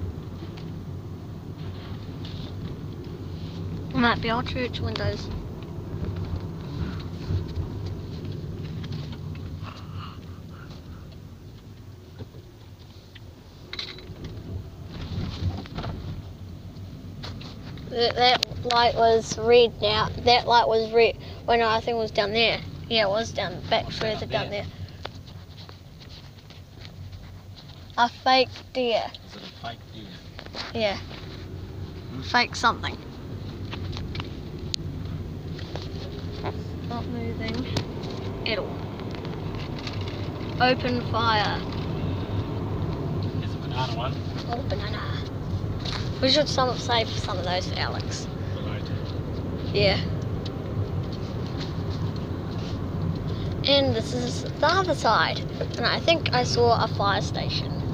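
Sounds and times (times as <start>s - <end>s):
car cabin road rumble: 0.0s - 57.9s.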